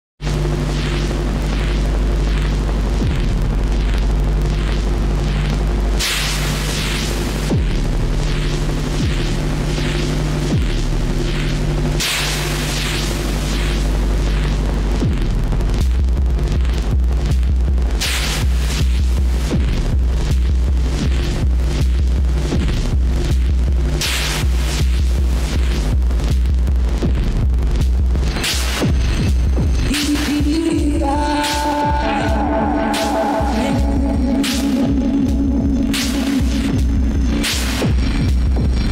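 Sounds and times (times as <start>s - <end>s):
synthesizer bass drone: 0.0s - 38.9s
synthesizer hiss bursts: 0.2s - 38.9s.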